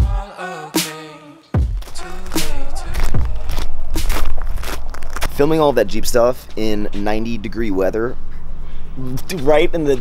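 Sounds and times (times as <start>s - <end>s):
steady low rumble: 1.6s - 10.0s
footsteps crunching on gravel: 1.8s - 5.8s.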